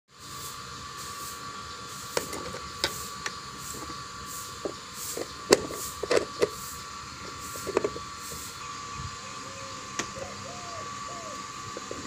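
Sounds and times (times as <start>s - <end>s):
steady background hum: 0.1s - 12.0s.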